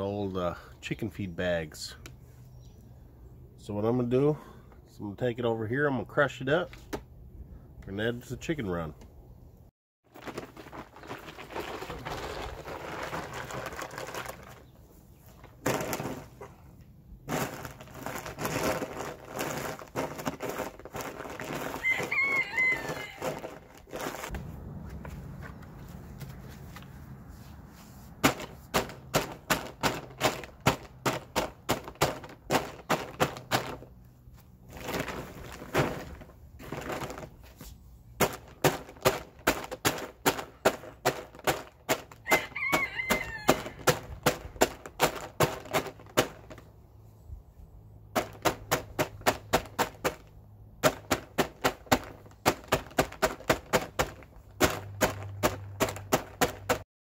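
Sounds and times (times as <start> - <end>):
charcoal crunching under feet: 10.1 - 16.6, 17.2 - 37.4
chicken calling: 21.8 - 23.3, 42.3 - 43.8
tool pounding a bag: 28.2 - 33.9, 38.2 - 42.5, 43.5 - 46.6, 48.2 - 50.2, 50.8 - 56.8.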